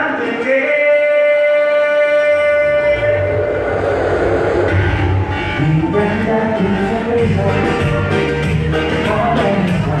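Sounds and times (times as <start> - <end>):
band holding a long note: 1.0 - 10.0
deep bass line: 2.6 - 10.0.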